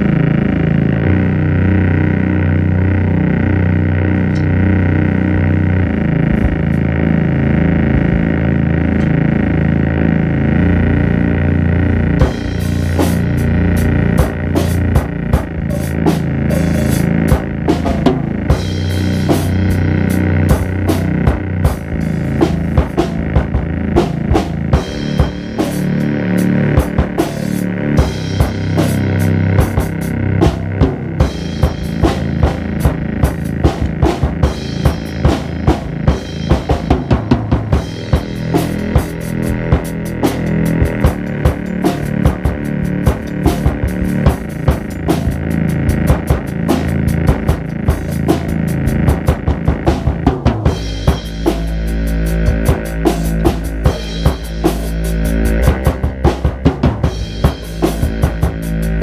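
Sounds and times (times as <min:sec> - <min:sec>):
drum kit steady beat: 0:00.0 - 0:10.0, 0:12.0 - 0:59.0
keyboard sustained chords: 0:00.0 - 0:59.0.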